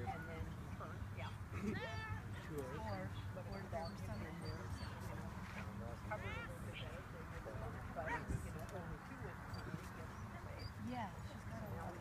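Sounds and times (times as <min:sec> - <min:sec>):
people talking quietly: 0:00.0 - 0:12.0.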